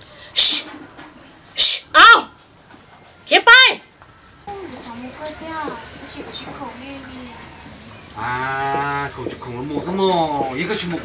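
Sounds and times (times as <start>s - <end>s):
woman making hissing sounds: 0.3s - 0.7s, 1.6s - 2.0s
woman speaking: 3.3s - 3.8s.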